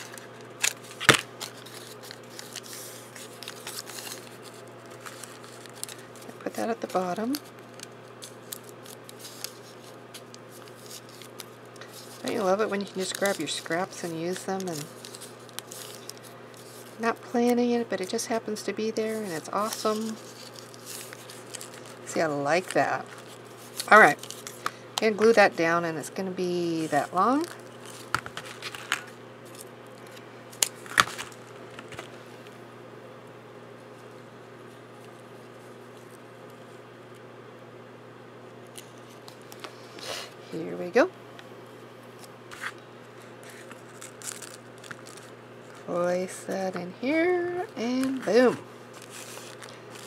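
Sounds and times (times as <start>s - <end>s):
paper rustling: 0.0s - 18.2s, 19.0s - 25.6s, 26.7s - 32.2s, 42.2s - 45.9s, 47.8s - 50.0s
steady low hum: 0.0s - 50.0s.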